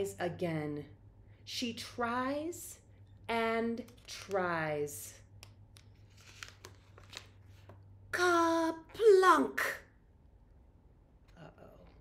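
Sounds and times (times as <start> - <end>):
low steady hum: 0.0 - 12.0
paper page being turned: 5.8 - 7.8.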